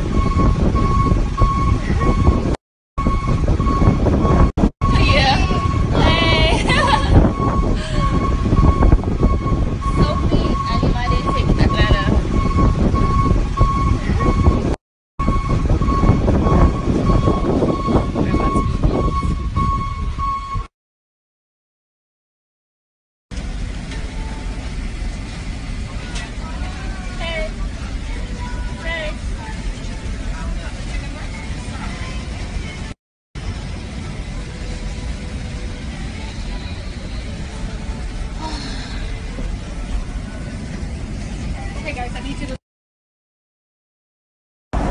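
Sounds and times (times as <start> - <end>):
rumble of a moving train: 0.0 - 20.7, 23.3 - 42.6.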